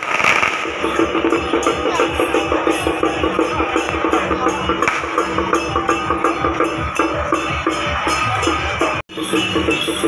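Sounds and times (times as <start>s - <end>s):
firecrackers crackling: 0.0s - 2.6s, 4.8s - 5.4s
procession drums beating: 0.0s - 9.0s.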